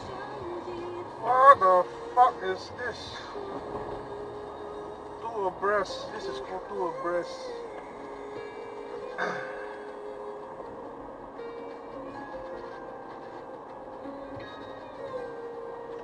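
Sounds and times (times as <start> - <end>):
low hum of car driving: 0.0 - 16.0
music on car radio: 0.0 - 16.0.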